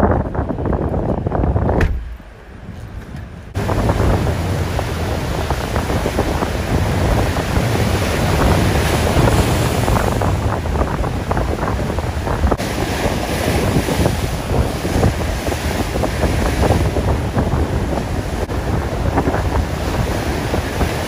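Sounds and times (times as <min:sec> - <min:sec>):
storm surf breaking: 0:00.0 - 0:21.0
wind gusting across microphone: 0:00.0 - 0:21.0.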